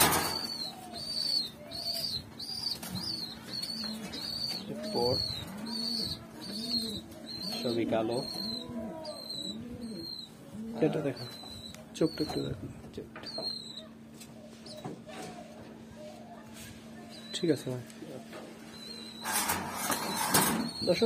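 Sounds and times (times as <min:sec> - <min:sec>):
pigeons cooing: 0:00.0 - 0:21.0.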